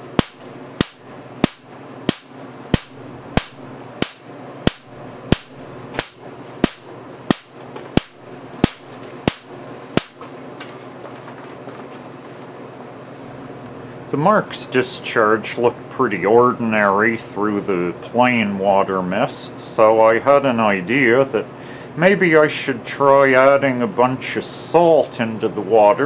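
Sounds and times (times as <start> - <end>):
electric spark cracking: 0.0 - 10.2.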